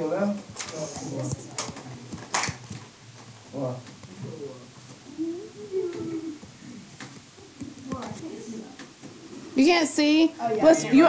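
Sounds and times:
low murmuring of voices: 0.0s - 11.0s
person humming: 4.4s - 6.8s.

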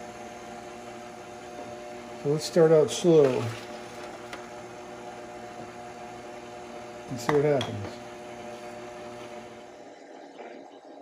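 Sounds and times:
stand mixer humming: 0.0s - 11.0s.

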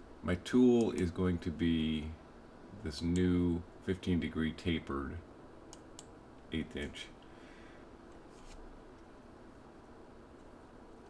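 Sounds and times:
faint rustle: 8.1s - 8.7s.

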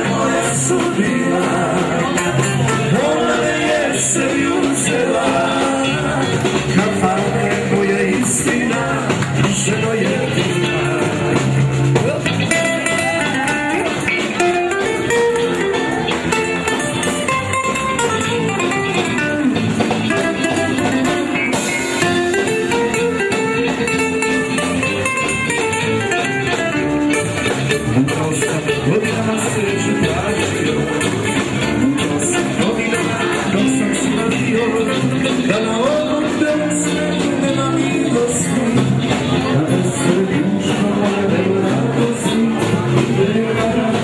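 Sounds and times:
person singing: 0.0s - 16.8s, 27.8s - 44.0s
live folk band playing: 0.0s - 44.0s.

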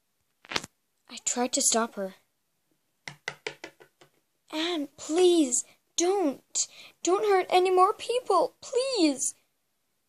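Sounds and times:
toy tapping on tabletop: 3.0s - 4.2s.

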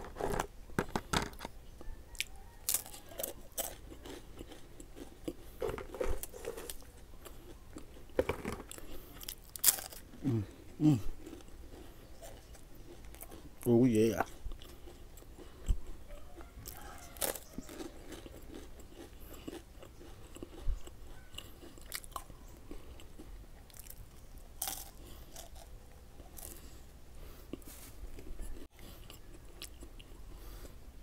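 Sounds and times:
crunchy wafer sticks being chewed: 1.8s - 30.8s.

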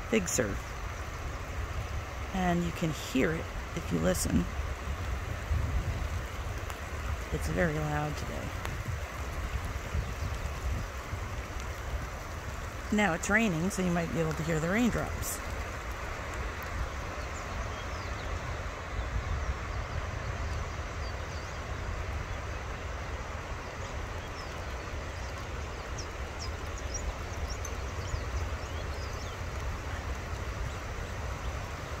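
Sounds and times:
rain falling: 0.0s - 32.0s.

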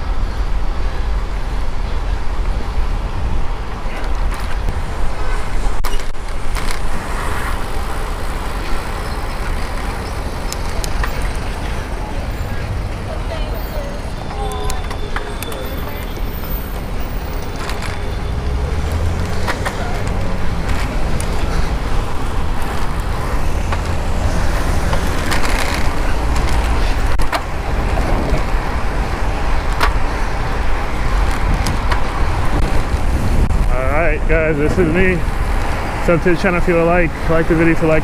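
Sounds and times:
wind rumbling on microphone: 0.0s - 36.3s
city traffic: 0.0s - 38.0s.

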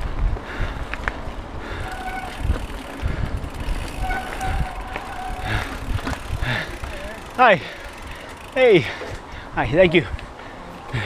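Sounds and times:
bike tyres rumbling over trail: 0.0s - 11.0s.

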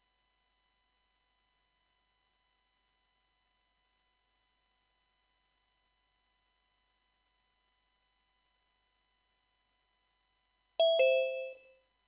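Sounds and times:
two-note ding-dong chime: 10.8s - 11.7s.

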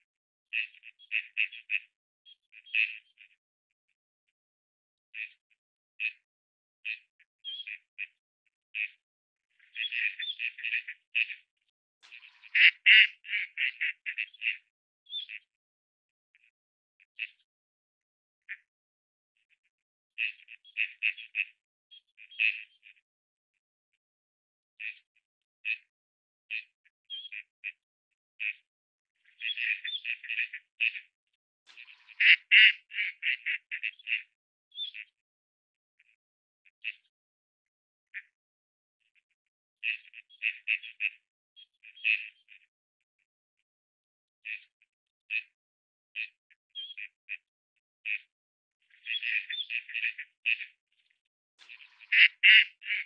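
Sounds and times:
ducks nasal calls: 12.1s - 14.6s, 31.8s - 34.4s, 51.8s - 53.0s.

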